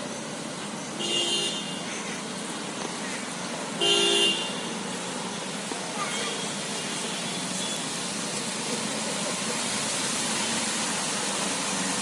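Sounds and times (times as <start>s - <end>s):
tyres splashing through water: 0.0s - 12.0s
vehicle traffic noise: 0.0s - 12.0s.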